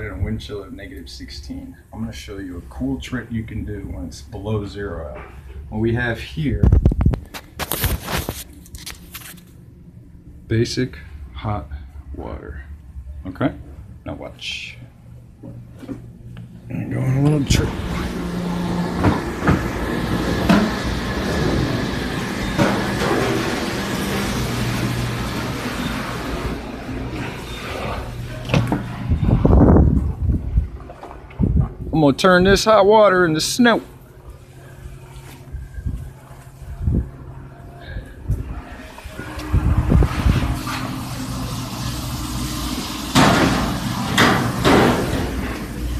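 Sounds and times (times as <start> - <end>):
kitchen machinery hum: 0.0 - 45.9
low rumbling buffeting microphone: 0.0 - 45.9.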